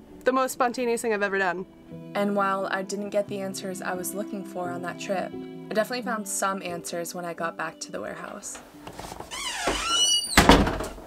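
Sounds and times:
door hinges squeaking: 0:08.9 - 0:11.0
door shutting thud: 0:09.3 - 0:11.0.

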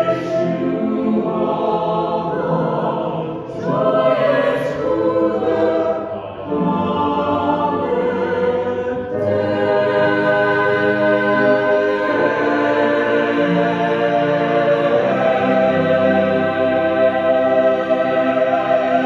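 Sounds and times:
mixed choir singing a cappella: 0:00.0 - 0:19.0.

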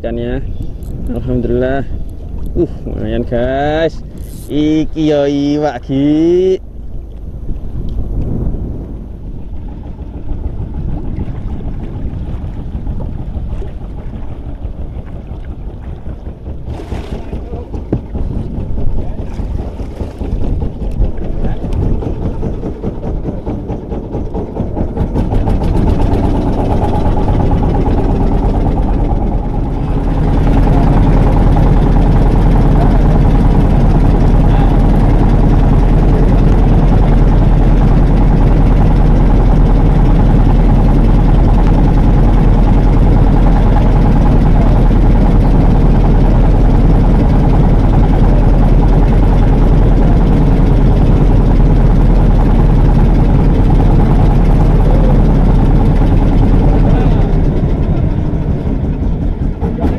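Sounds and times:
boat engine running: 0:00.0 - 0:59.9.

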